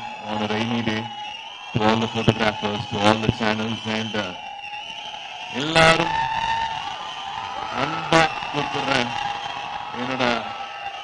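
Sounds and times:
man speaking over pa: 7.7s - 9.2s, 10.0s - 10.5s.

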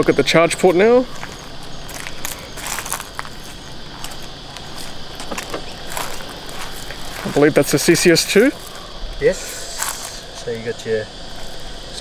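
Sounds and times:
insects droning: 0.0s - 12.0s
footsteps: 0.6s - 10.5s, 11.2s - 12.0s.

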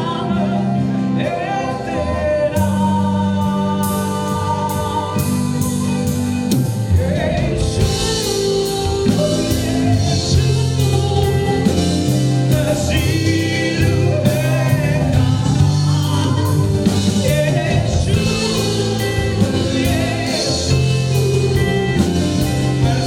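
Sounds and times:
keyboard: 0.0s - 23.0s
people singing: 0.0s - 23.0s
sustained bass notes: 0.0s - 23.0s
steady drum beat: 5.2s - 23.0s.

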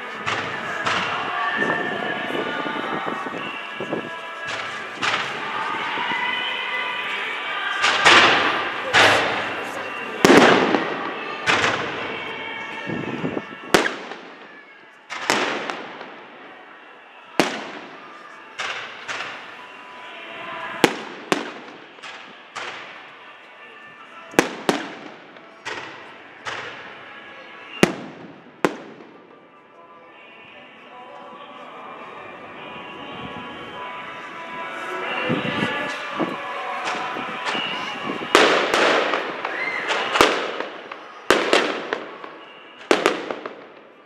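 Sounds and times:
fireworks bangs echoing: 0.0s - 23.3s, 24.3s - 29.5s, 34.8s - 44.0s.

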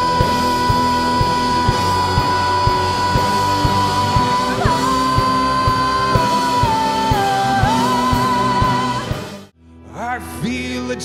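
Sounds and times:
live rock band music: 0.0s - 11.0s.

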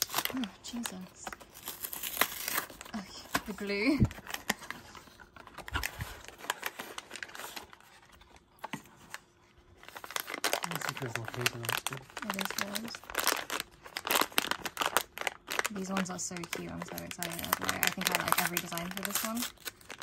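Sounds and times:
paper package tearing: 0.0s - 4.8s, 5.4s - 8.5s, 9.8s - 20.0s
paper pouch crinkling: 0.0s - 8.6s, 9.7s - 20.0s.

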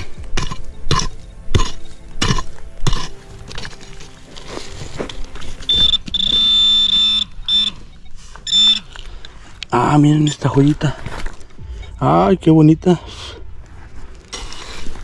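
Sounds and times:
hand pick chopping stony soil: 0.0s - 5.2s
metal detector buzzing tone: 5.6s - 9.0s
metal detector short beep: 5.6s - 9.0s.

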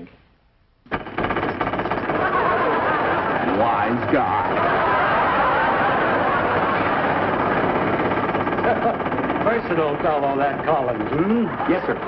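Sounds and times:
rapid mechanical clatter: 0.9s - 12.0s
studio audience laughter: 1.6s - 9.1s, 10.0s - 12.0s.

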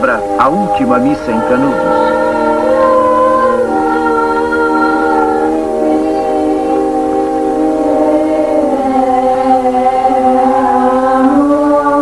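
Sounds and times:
choir chanting a held chord: 0.0s - 12.0s.

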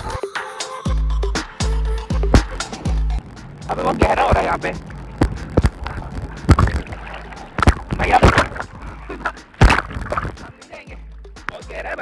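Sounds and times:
seawater gurgling and sloshing: 2.4s - 10.6s
waves knocking on camera: 2.4s - 10.7s.

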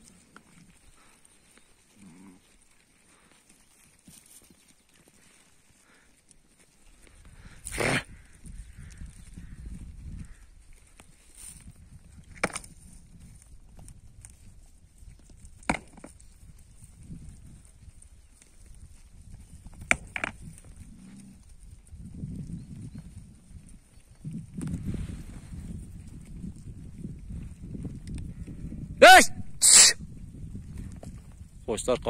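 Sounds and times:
sheep grazing: 0.0s - 32.0s.

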